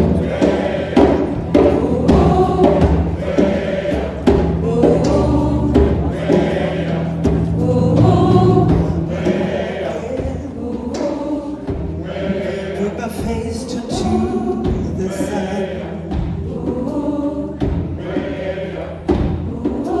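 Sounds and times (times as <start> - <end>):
drum beat: 0.0 - 20.0
gospel choir singing: 0.0 - 20.0
live band: 0.0 - 20.0.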